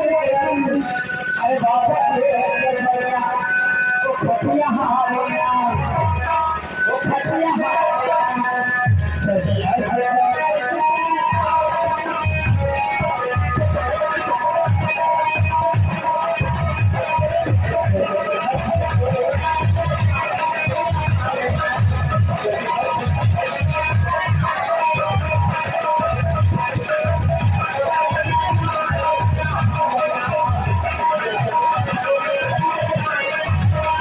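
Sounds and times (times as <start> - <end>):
harmonium: 0.0 - 34.0.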